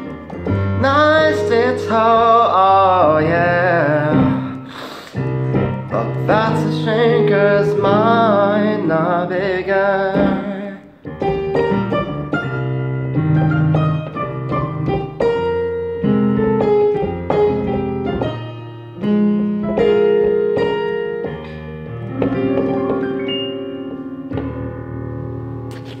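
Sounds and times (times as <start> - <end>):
piano keyboard melody: 0.0 - 26.0.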